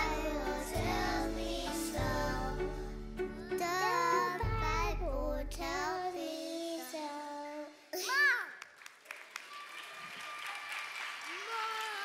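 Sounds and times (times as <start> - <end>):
backing music: 0.0 - 5.9
children singing into microphones: 0.0 - 7.8.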